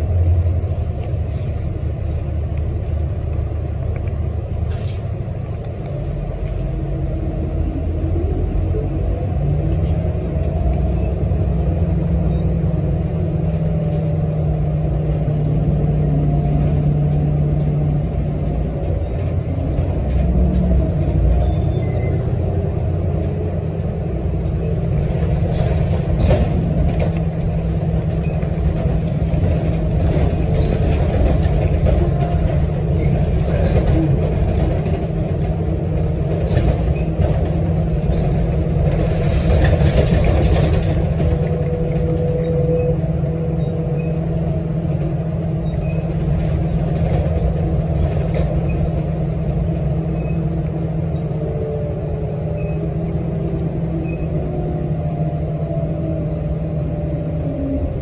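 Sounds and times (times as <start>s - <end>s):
bus engine and road rumble: 0.0s - 58.0s
faint gliding squeals: 18.9s - 22.8s, 41.4s - 46.2s, 49.9s - 56.1s.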